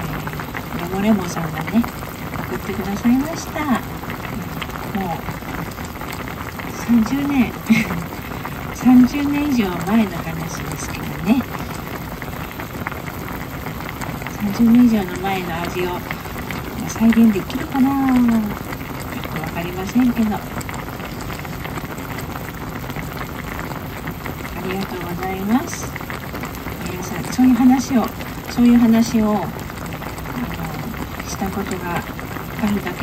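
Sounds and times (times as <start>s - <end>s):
soup boiling: 0.0s - 33.0s.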